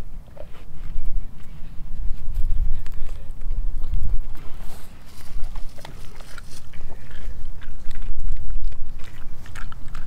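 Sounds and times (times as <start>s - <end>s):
dog licking and chewing: 0.2s - 10.0s.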